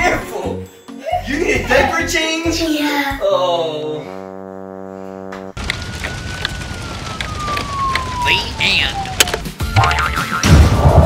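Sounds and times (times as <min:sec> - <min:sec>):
horn-like buzz: 0:04.0 - 0:05.6.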